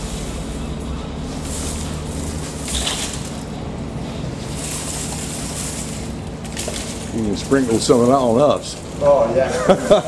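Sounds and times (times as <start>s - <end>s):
low machine hum: 0.0s - 10.0s
crushed ice tipping from steel bowl: 1.4s - 3.6s, 4.5s - 8.9s.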